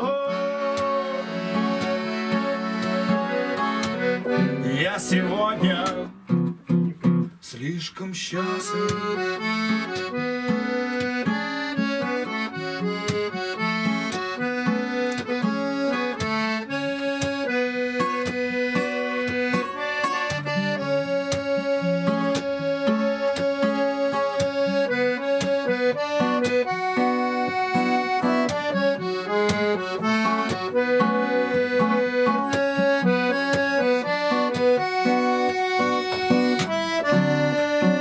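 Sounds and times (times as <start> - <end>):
melody of long held notes: 0.0 - 6.5, 8.4 - 38.0
acoustic guitar strumming: 0.0 - 38.0.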